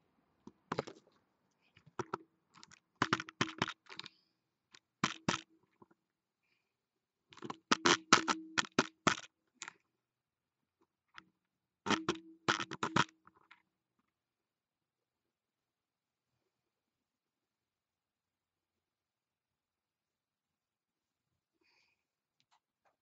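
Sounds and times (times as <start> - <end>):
rapid clicks and taps: 1.8 - 4.1, 5.0 - 6.0, 7.4 - 9.8, 11.9 - 13.6.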